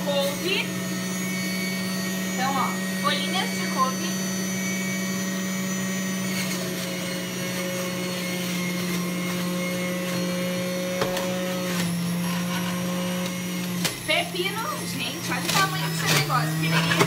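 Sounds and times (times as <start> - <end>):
juicer motor hum: 0.0 - 17.0.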